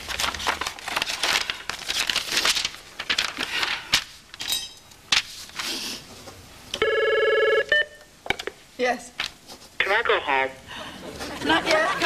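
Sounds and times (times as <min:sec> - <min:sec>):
warbling electronic phone ring: 0:06.8 - 0:07.9.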